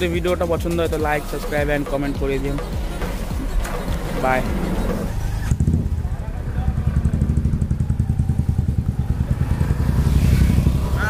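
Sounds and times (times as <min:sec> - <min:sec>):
motorcycle engine running: 0:02.6 - 0:11.0.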